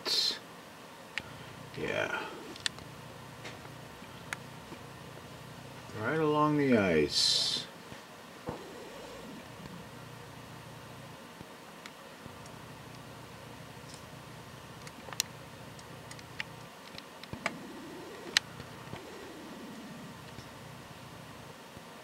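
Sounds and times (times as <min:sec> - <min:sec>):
faint outdoor hiss: 0:00.0 - 0:22.0.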